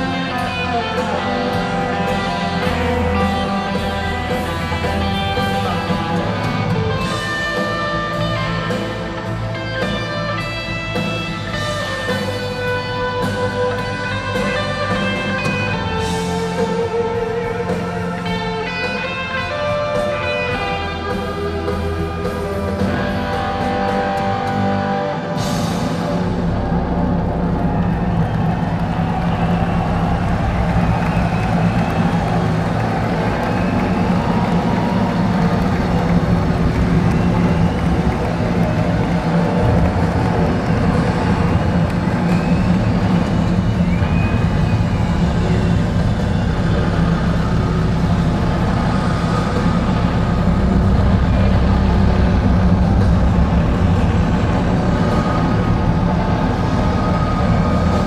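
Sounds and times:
electric guitar drone: 0.0s - 58.0s
guitar feedback tones: 0.0s - 58.0s
heavy low rumble: 26.1s - 58.0s.

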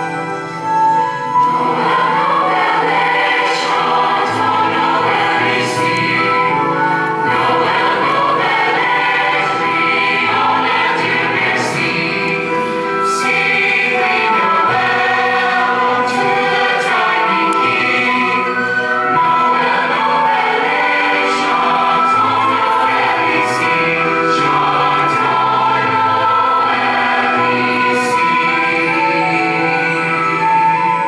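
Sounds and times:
female choir singing in harmony: 1.2s - 31.0s.

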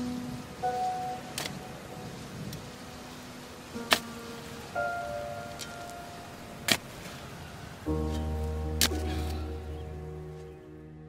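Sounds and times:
slow background music: 0.0s - 11.0s
shovel striking ground: 8.0s - 9.4s.

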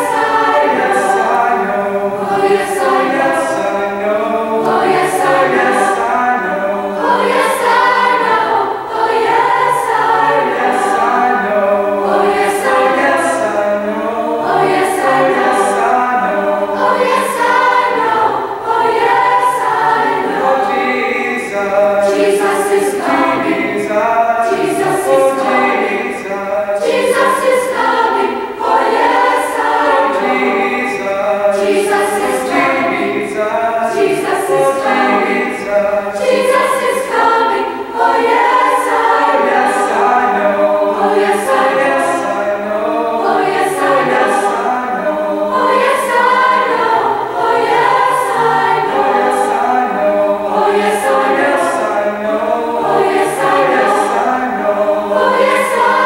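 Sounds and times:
youth choir singing in harmony: 0.0s - 56.0s.

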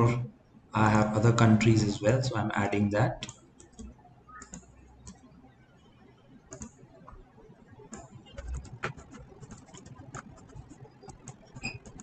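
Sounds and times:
mouse and keyboard clicks: 3.2s - 5.2s, 6.5s - 7.2s.

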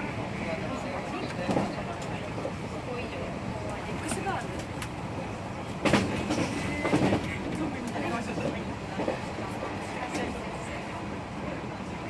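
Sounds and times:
passengers talking faintly: 0.0s - 12.0s
train running rumble: 0.0s - 12.0s.

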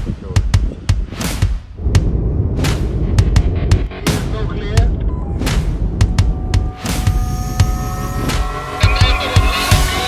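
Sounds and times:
thumping electronic music beat: 0.0s - 10.0s.

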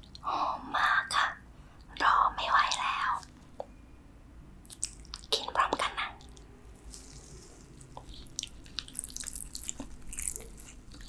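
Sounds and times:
woman whispering: 0.2s - 3.3s, 5.3s - 6.3s.

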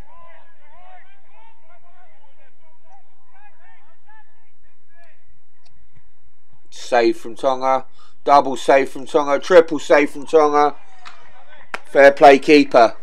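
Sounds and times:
distant players shouting: 0.0s - 6.1s, 7.0s - 13.0s.

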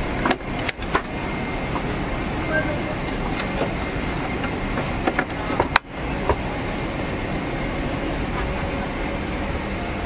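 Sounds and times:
rushing airliner cabin noise: 0.0s - 10.0s.

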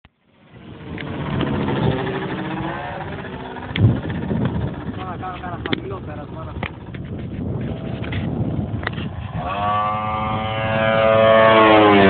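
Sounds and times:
model plane engine droning: 0.2s - 12.0s.

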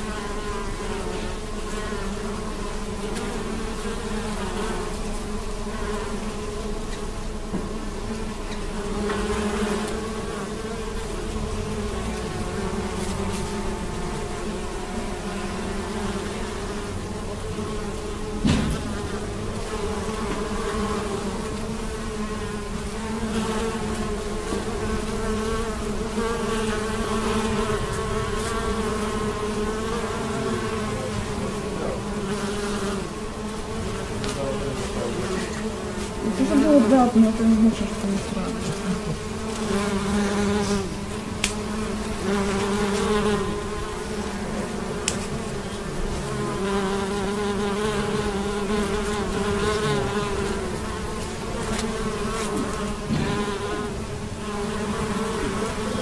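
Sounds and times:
bees buzzing: 0.0s - 56.0s
brief knock: 18.4s - 19.0s, 53.1s - 53.4s.

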